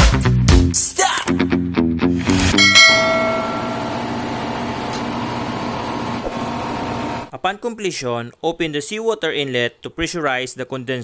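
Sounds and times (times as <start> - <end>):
bell-like chime: 2.6 - 4.7
engine room machinery drone: 2.8 - 7.3.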